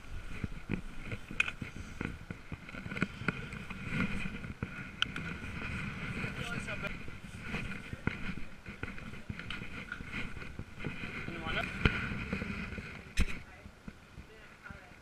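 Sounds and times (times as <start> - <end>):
camera handling knocks and rubbing: 0.3 - 13.5.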